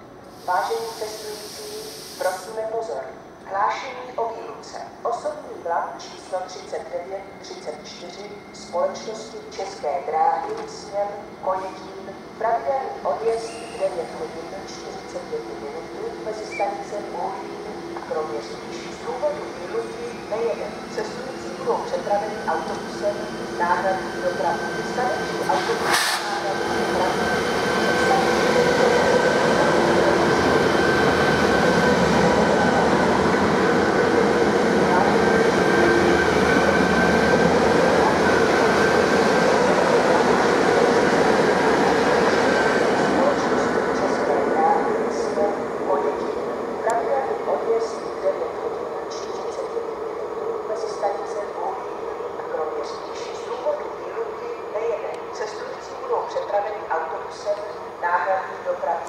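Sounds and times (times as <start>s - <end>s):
train wheels rumbling on rail: 7.7s - 49.8s.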